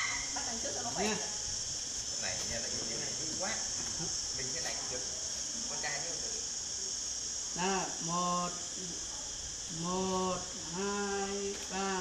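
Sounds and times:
high-pitched insect chorus: 0:00.0 - 0:12.0.

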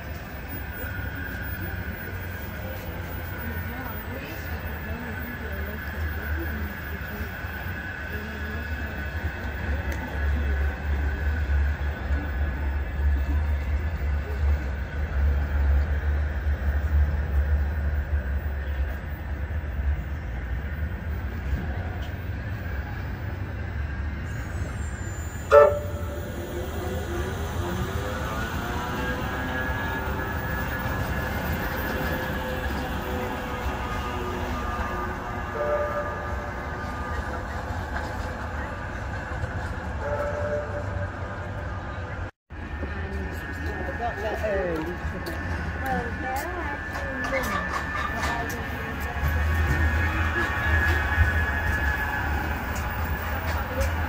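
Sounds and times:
tram motor whine: 0:00.0 - 0:54.0
tram rumbling past: 0:00.0 - 0:54.0.

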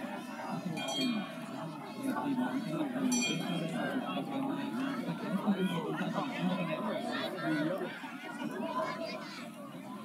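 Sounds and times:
voices of people: 0:00.0 - 0:10.0.

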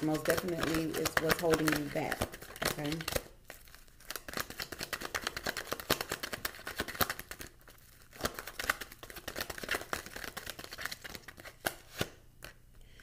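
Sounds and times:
cards shuffling: 0:00.0 - 0:12.6.

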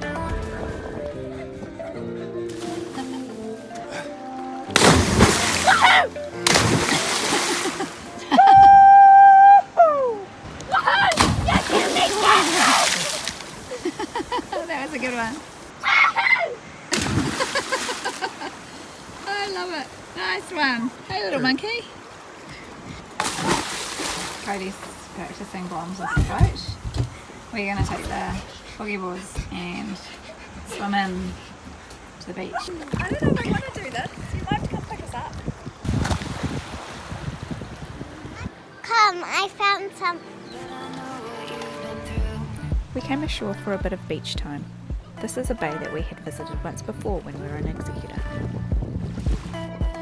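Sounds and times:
small waves splashing: 0:02.5 - 0:42.4, 0:44.9 - 0:50.0
splash of person jumping into water: 0:04.8 - 0:07.9, 0:11.0 - 0:13.6, 0:16.9 - 0:18.2, 0:23.2 - 0:24.5, 0:35.8 - 0:37.2
people whooping and shouting: 0:05.6 - 0:06.2, 0:08.2 - 0:13.1, 0:15.8 - 0:16.6
wind buffeting microphone: 0:26.0 - 0:38.6, 0:42.2 - 0:50.0.

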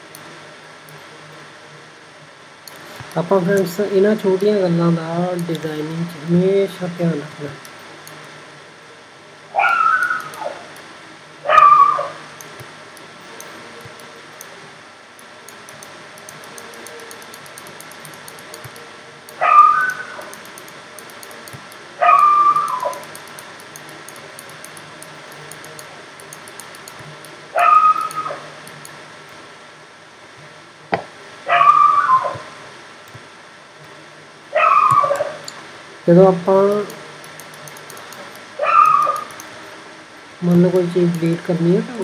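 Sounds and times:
dog barking: 0:09.6 - 0:10.3, 0:11.5 - 0:12.1, 0:19.4 - 0:20.0, 0:22.0 - 0:22.9, 0:31.5 - 0:32.4, 0:34.6 - 0:35.4, 0:38.6 - 0:39.2.

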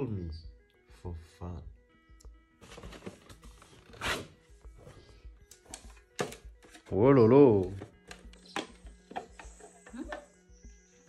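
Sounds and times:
faint background music: 0:00.0 - 0:11.0
cardboard box rustling: 0:02.6 - 0:04.3.

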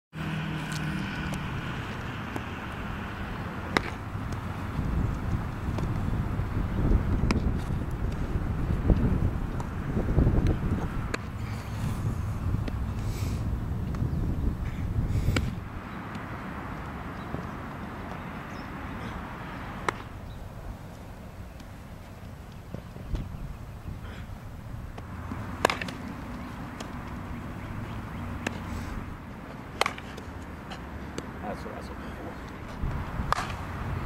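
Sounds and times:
steady outdoor hiss: 0:00.2 - 0:34.0
wind rumble on microphone: 0:00.7 - 0:16.2, 0:22.2 - 0:25.6, 0:32.6 - 0:34.0
bat cracking baseball: 0:03.4 - 0:04.5, 0:19.8 - 0:20.2, 0:24.9 - 0:27.1, 0:29.7 - 0:30.2, 0:33.2 - 0:33.9.

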